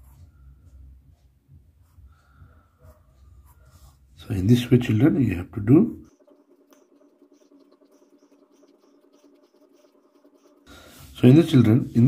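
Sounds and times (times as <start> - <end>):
pencil scratching on paper: 6.1 - 12.0.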